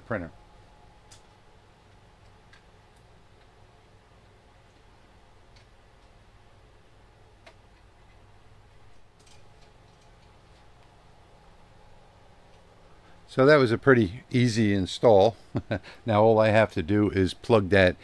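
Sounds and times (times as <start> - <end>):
faint steady hum: 0.0 - 18.0.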